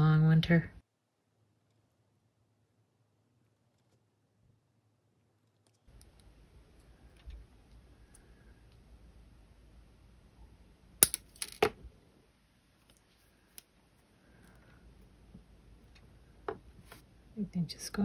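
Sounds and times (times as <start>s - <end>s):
faint handling and rubbing: 12.7s - 17.1s.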